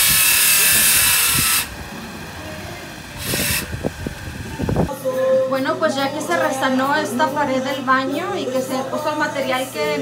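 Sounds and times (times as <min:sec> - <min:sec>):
handheld power tool running: 0:00.0 - 0:01.8, 0:02.9 - 0:04.2.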